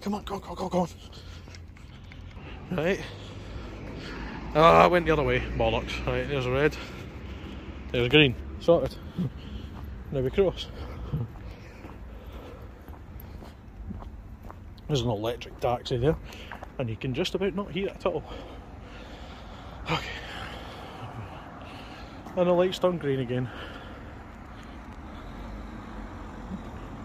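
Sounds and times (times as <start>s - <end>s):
low rumble of street noise: 0.0s - 27.0s.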